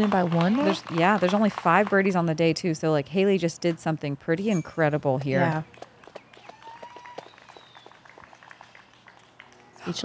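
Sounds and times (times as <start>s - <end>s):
person speaking: 4.4s - 5.6s
whistled rising tone: 6.4s - 8.0s.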